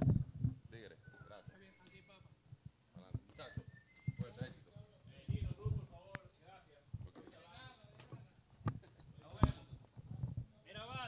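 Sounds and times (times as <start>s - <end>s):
people talking: 0.7s - 2.3s, 3.0s - 9.8s, 10.6s - 11.0s.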